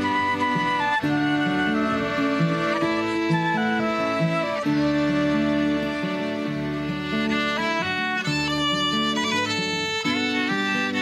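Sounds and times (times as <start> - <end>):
fiddle melody: 0.0 - 11.0
strummed acoustic guitar: 0.0 - 11.0.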